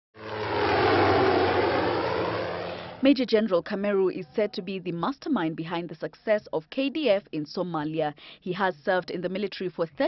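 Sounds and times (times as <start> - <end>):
helicopter engine and rotor: 0.2 - 3.3.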